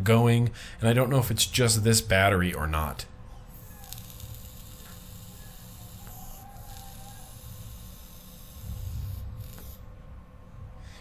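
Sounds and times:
airy hiss of inhaling: 3.9s - 9.9s.

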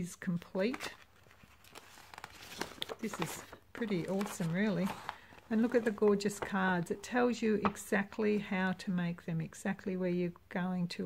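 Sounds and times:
paper sheet rustling: 0.5s - 8.4s.

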